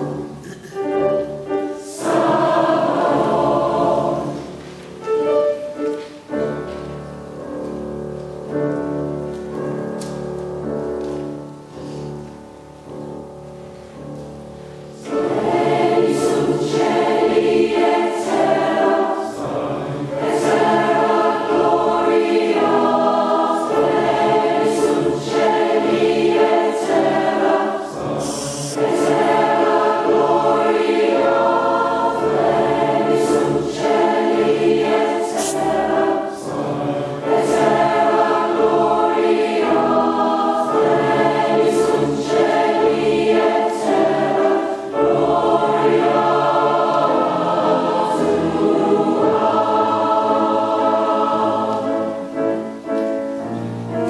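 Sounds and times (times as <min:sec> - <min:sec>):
choir singing: 0:00.0 - 0:07.6, 0:14.9 - 0:54.0
grand piano: 0:00.0 - 0:54.0.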